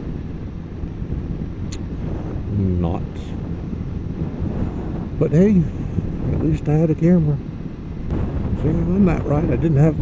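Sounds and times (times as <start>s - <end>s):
engine and road drone: 0.0s - 10.0s
wind noise on microphone: 0.0s - 10.0s.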